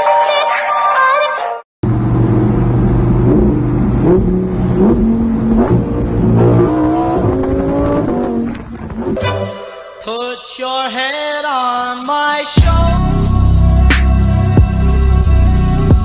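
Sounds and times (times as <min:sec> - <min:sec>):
car engine accelerating: 0:01.8 - 0:09.2.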